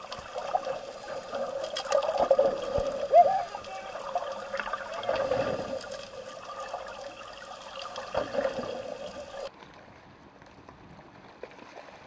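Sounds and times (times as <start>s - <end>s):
underwater gurgling and bubbling: 0.0s - 9.5s.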